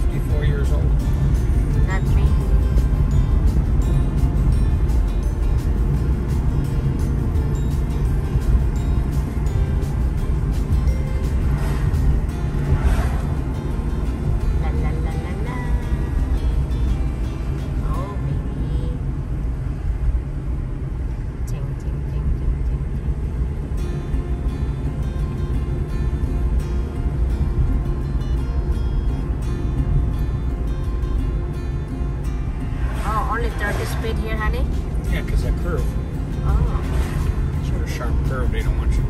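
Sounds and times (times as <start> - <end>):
road and engine rumble inside car: 0.0 - 39.0.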